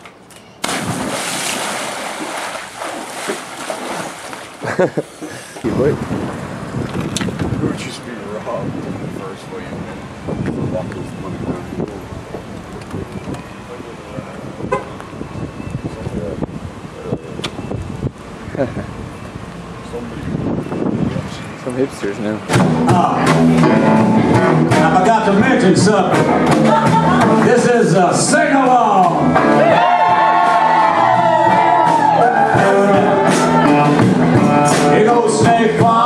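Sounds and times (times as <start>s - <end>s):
street traffic noise: 0.0s - 36.0s
big splash into pool: 0.6s - 4.7s
water rushing and churning: 0.6s - 6.7s
car horn toot: 14.6s - 15.0s.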